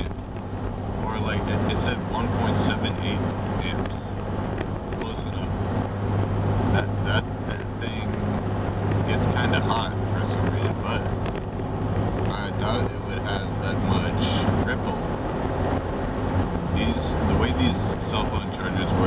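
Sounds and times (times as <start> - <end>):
man talking: 0.0 - 0.2, 1.0 - 4.1, 5.0 - 5.6, 6.6 - 8.3, 9.0 - 11.2, 12.3 - 15.1, 16.7 - 19.0
car engine and road drone: 0.0 - 19.0.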